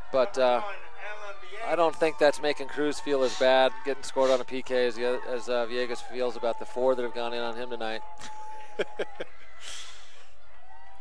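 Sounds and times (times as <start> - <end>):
man laughing: 8.2 - 9.3
soft exhale: 9.6 - 10.2.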